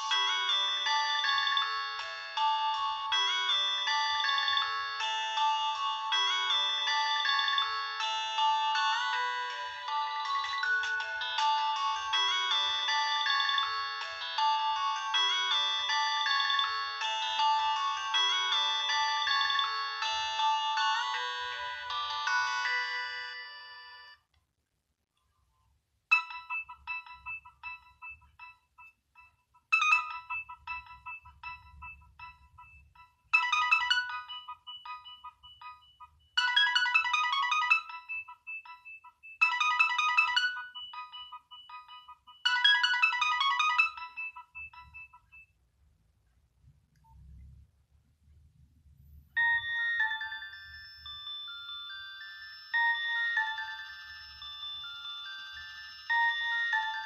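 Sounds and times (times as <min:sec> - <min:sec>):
mobile phone polyphonic ringtones: 0:00.0 - 0:24.3, 0:26.1 - 0:45.6, 0:49.3 - 0:57.0.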